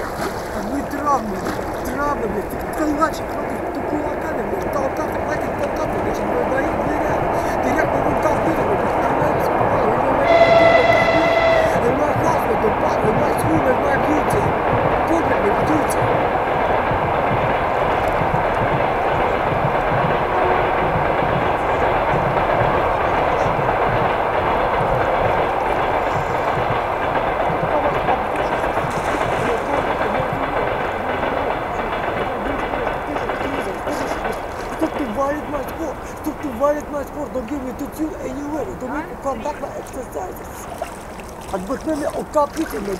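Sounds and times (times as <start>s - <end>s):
rushing rumbling noise: 0.0s - 42.9s
horn blast: 10.0s - 13.4s, 20.0s - 23.7s.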